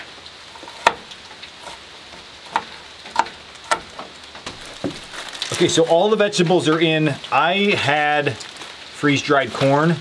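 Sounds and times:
rain on a metal roof: 0:00.0 - 0:10.0.

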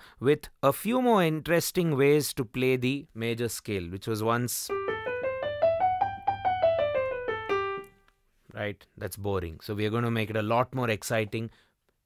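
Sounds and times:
digital piano playing a scale: 0:04.7 - 0:07.9.

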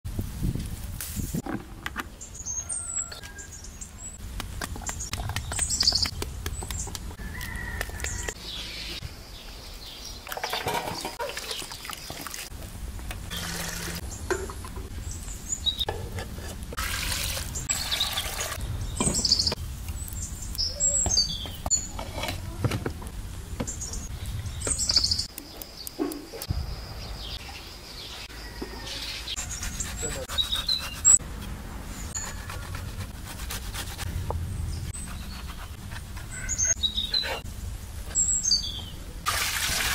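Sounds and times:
small birds chirping: 0:02.1 - 0:12.4, 0:14.9 - 0:16.0, 0:17.6 - 0:31.2, 0:34.1 - 0:39.2
cooking pots and utensils knocking: 0:14.2 - 0:14.9.

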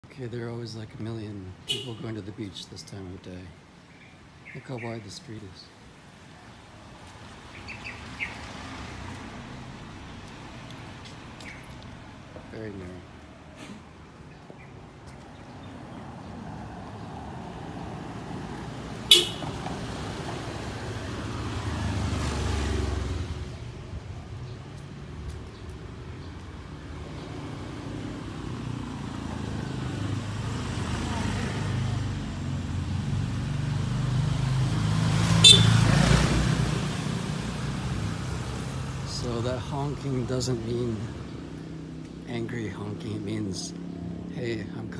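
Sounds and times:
short vehicle horn toots: 0:01.7 - 0:02.0, 0:19.1 - 0:19.6, 0:35.4 - 0:35.8
engines passing: 0:05.9 - 0:44.9.

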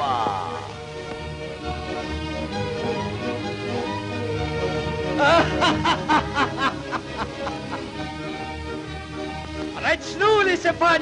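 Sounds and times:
background music: 0:00.0 - 0:11.0
cartoon character laughing: 0:05.2 - 0:06.8.

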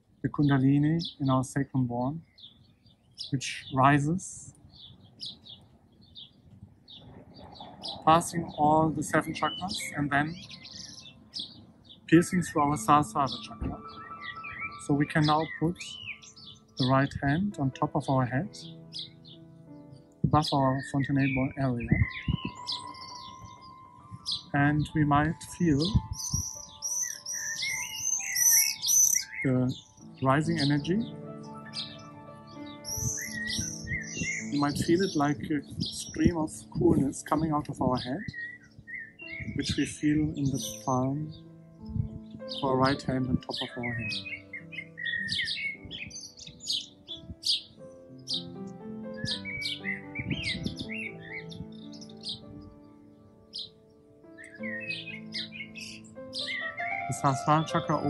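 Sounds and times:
soft background music: 0:00.0 - 0:58.0
songbirds chirping: 0:00.0 - 0:58.0.

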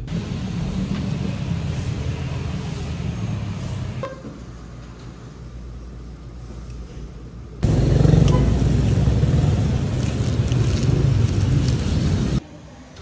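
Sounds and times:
road traffic rumble: 0:00.0 - 0:13.0.

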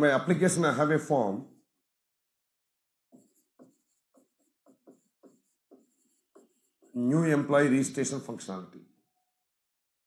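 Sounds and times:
stylus scratching on tablet: 0:03.1 - 0:08.2.

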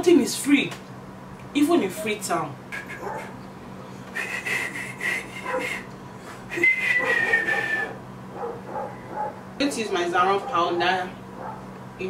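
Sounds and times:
dog whining: 0:02.8 - 0:03.4, 0:05.4 - 0:05.9, 0:06.6 - 0:09.4, 0:10.4 - 0:11.7.

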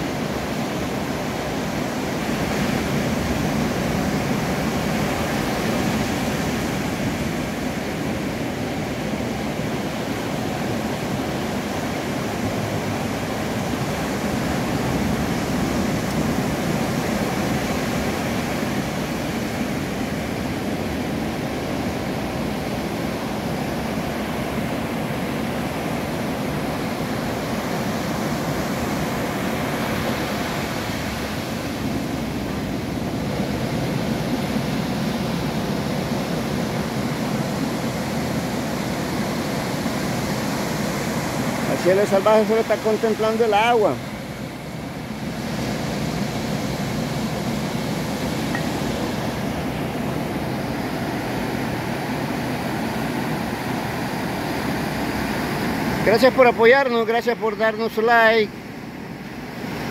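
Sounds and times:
waves breaking on stony beach: 0:00.0 - 0:59.9.

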